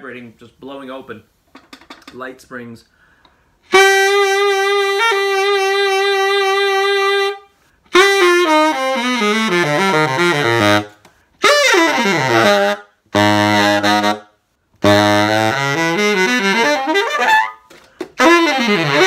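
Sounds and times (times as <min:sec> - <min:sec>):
tenor saxophone playing: 0:03.6 - 0:19.0.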